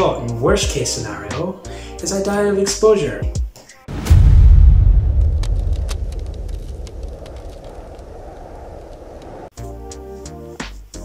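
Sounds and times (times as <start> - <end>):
deep low rumble: 3.9 - 9.5
faint crackles: 4.9 - 9.5.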